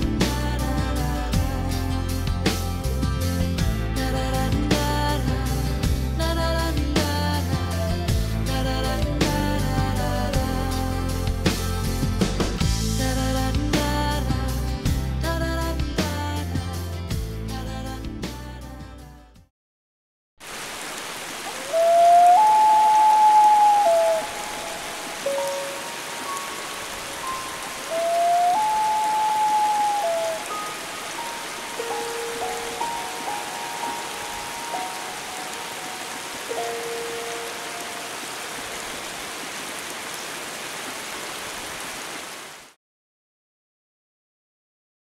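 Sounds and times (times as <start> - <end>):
rain falling on water: 20.4 - 42.8
long melodic gliding tones: 21.7 - 38.7.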